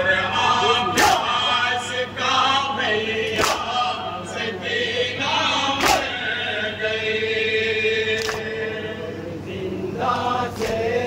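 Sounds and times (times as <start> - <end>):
men chanting in unison: 0.0 - 11.0
hands slapping chests: 3.4 - 3.6, 5.8 - 6.1.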